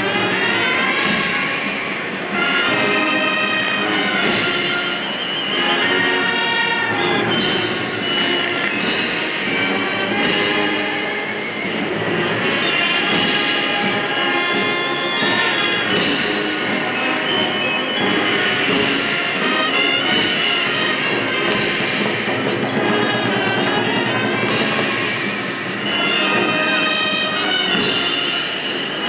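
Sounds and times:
brass band playing slow march: 0:00.0 - 0:29.0.

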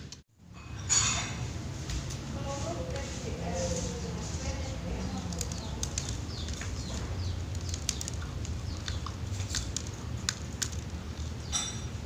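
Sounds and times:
pecking clicks: 0:05.1 - 0:11.3.

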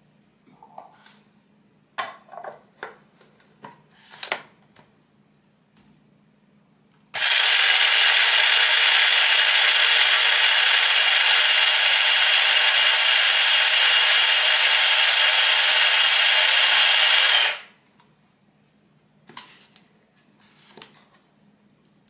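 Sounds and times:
coffee grinder whirring: 0:07.2 - 0:17.8.

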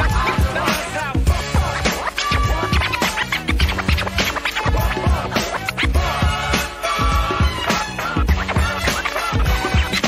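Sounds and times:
drum beat with bass: 0:00.0 - 0:10.0
turntable scratching: 0:00.0 - 0:10.0.

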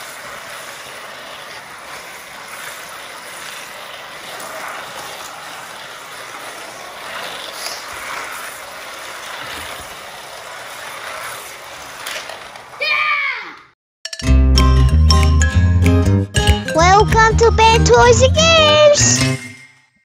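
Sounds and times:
slot cars whirring: 0:00.0 - 0:12.8, 0:16.8 - 0:19.6.

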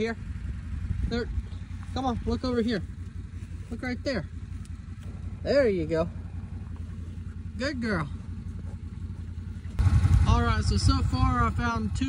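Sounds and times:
utility vehicle engine idling: 0:00.0 - 0:12.0.

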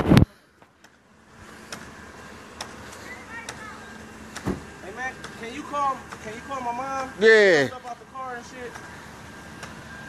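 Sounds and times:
faint vehicle engine hum: 0:00.0 - 0:10.0.

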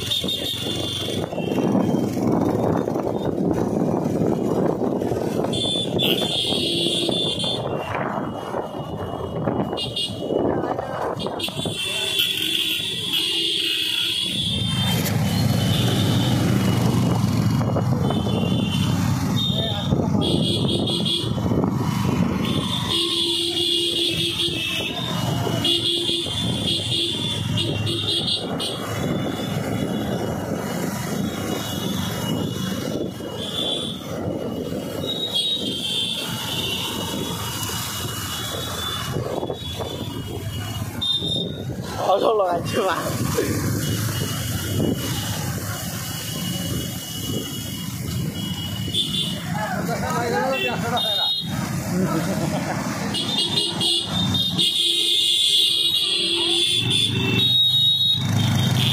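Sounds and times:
motorcycle engines: 0:00.0 - 0:58.9
wind on microphone: 0:01.0 - 0:11.8, 0:19.9 - 0:22.8.

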